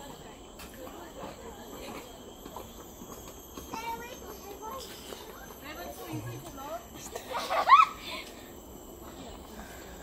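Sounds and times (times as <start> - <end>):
forest insects droning: 0.0 - 10.0.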